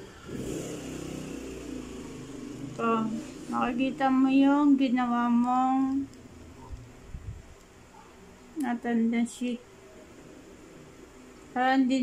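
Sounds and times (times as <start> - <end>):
motor engine revving: 0.0 - 4.8.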